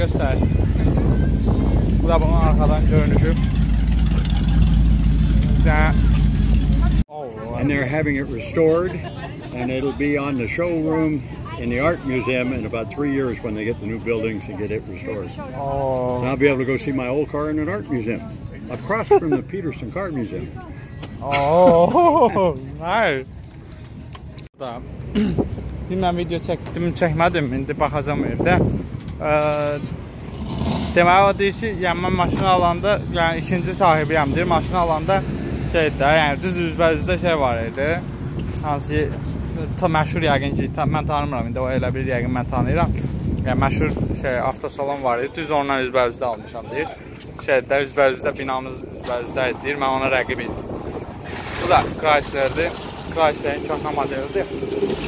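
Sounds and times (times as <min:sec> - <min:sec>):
car engine idling: 0:01.8 - 0:07.0
voices: 0:43.4 - 0:55.0.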